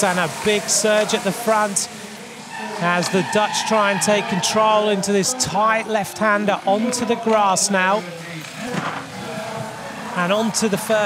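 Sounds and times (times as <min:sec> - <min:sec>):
bikes riding past on wet course: 0:00.0 - 0:11.0
faint voices: 0:00.0 - 0:11.0.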